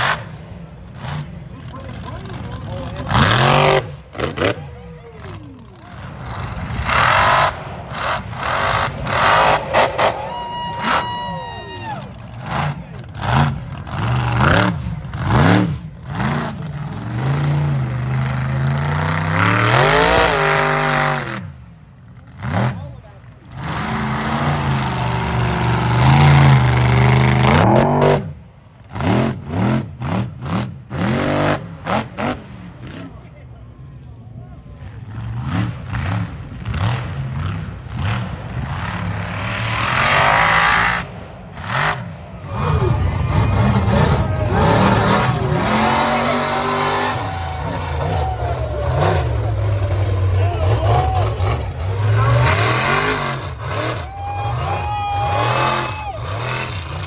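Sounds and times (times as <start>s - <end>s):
truck engine revving hard: 0.0s - 33.2s, 34.8s - 57.0s
tyres spinning in dirt: 42.4s - 57.0s.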